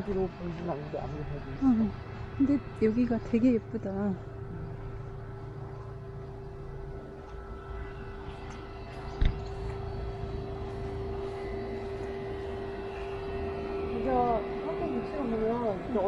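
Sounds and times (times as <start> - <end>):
mechanical drone: 0.0 - 16.0
low rumble: 1.0 - 16.0.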